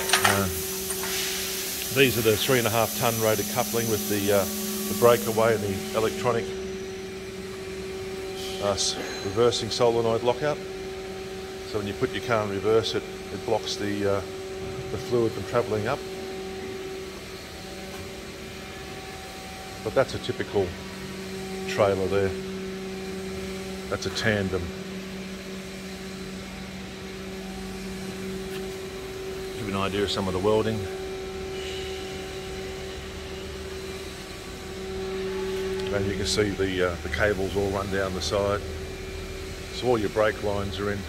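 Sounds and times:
machine hum: 0.0 - 41.0.

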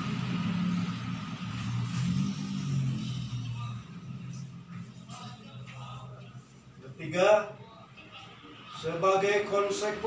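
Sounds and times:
vehicle engine humming: 0.0 - 6.8.

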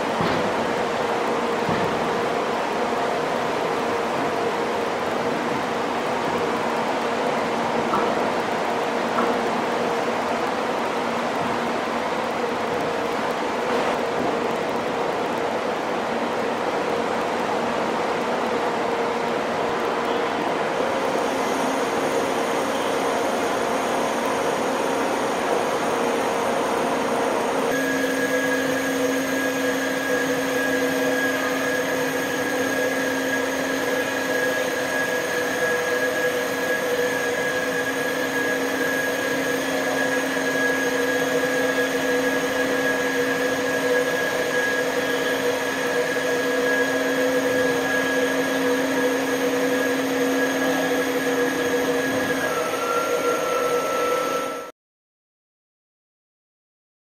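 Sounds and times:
machinery rumble and hiss: 0.0 - 54.7
steady whine: 0.0 - 54.7
single tone: 27.7 - 54.7.

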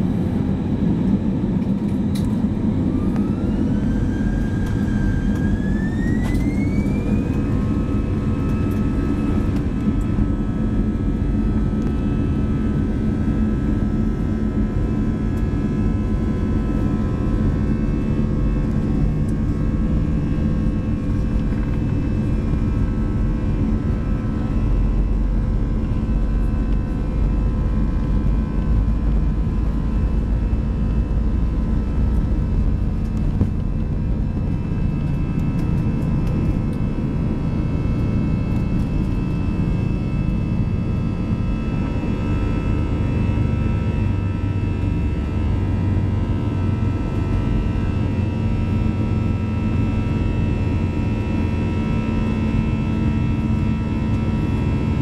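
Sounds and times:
jet engine whine: 0.0 - 55.0
takeoff roll rumble: 15.0 - 46.2.

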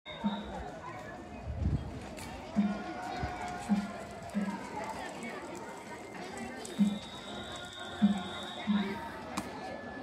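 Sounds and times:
drum beats: 0.1 - 0.7, 2.4 - 5.2, 6.6 - 9.4
crowd voices: 0.1 - 10.0
held call or flute note: 6.6 - 9.1.

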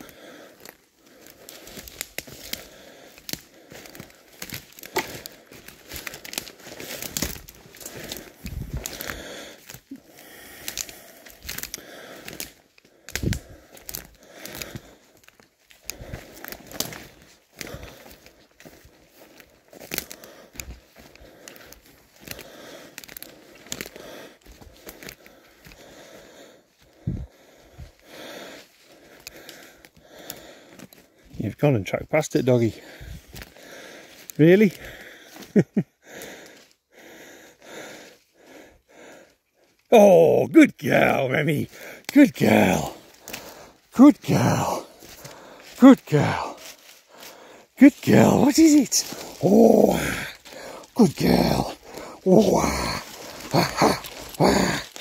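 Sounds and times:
footsteps through dry twigs: 0.0 - 31.4, 32.8 - 38.3, 41.1 - 55.0.

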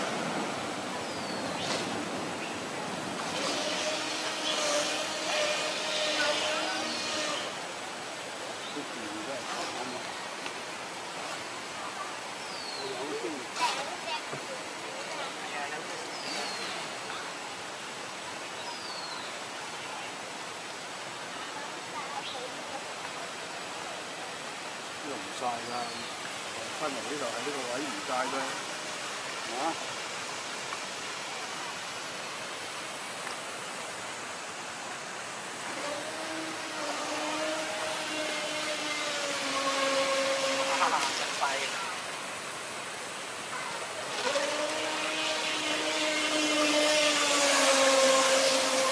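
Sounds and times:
water rushing in pond: 0.0 - 48.9
model boat motor whining: 3.2 - 7.7, 35.6 - 41.8, 44.0 - 48.9.

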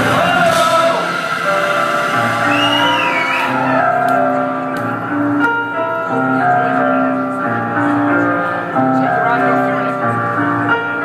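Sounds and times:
high gliding synth note: 0.0 - 4.8
bass line: 0.0 - 8.1
synthesizer chords: 0.0 - 11.0.

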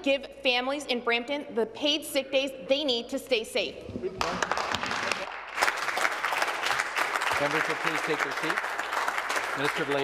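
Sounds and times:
people clapping: 4.1 - 10.0.

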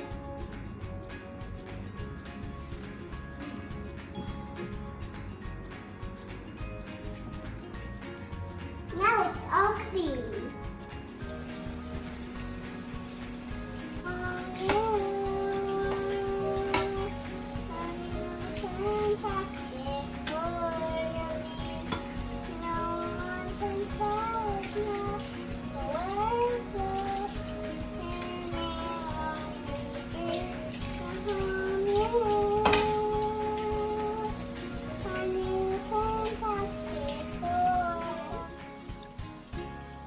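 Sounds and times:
tap running into steel sink: 14.5 - 17.1, 21.4 - 25.2, 29.0 - 36.6.

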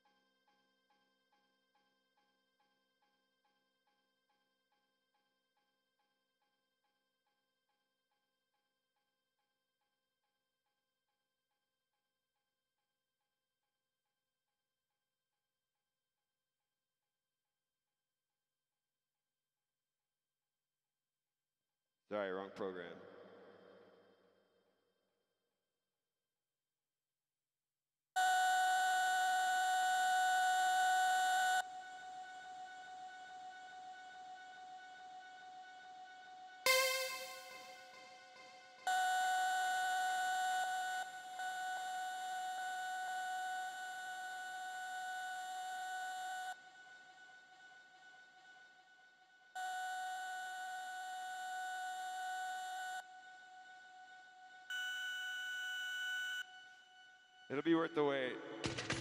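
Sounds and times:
beep-like synthesizer tones: 36.7 - 37.7.

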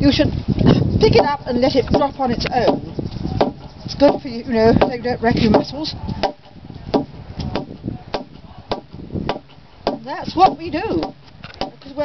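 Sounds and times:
mallet striking log: 1.2 - 4.2, 4.8 - 11.9.

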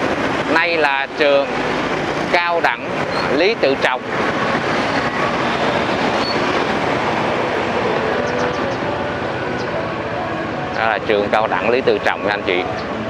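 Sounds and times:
motorbike road and wind noise: 0.0 - 13.0.

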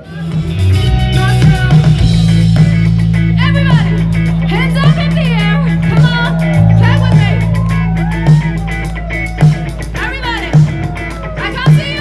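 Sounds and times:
drum kit beat: 0.0 - 12.0
electric guitar: 0.0 - 12.0
heavy bass line: 0.0 - 12.0.

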